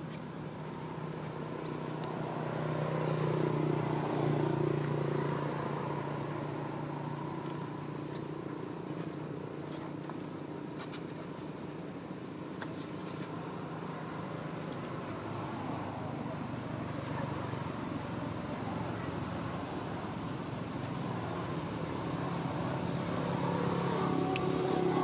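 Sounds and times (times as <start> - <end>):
vehicle engine humming: 0.0 - 25.0.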